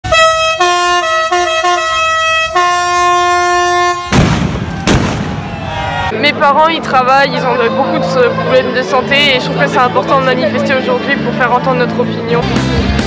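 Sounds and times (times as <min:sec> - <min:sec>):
air horn blaring: 0:00.0 - 0:04.3
sharp crack: 0:04.0 - 0:05.8.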